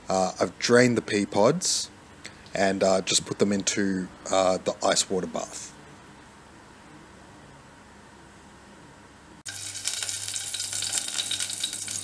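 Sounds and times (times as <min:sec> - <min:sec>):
crackling hiss of gas burner: 0:09.4 - 0:12.0.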